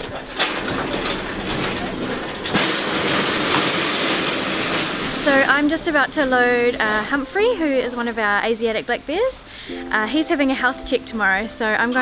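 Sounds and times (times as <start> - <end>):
metal cage rolling on concrete: 0.0 - 8.6.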